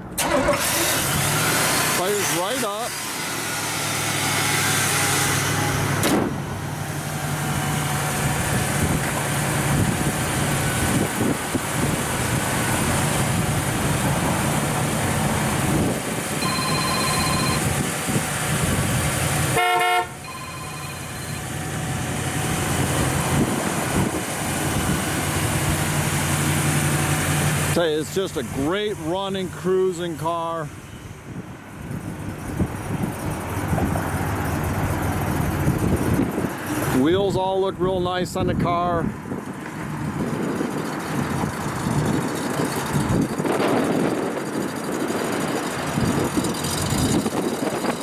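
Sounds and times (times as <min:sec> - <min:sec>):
car engine idling: 0:05.5 - 0:36.5, 0:39.3 - 0:48.0
car horn honk: 0:19.5 - 0:21.5.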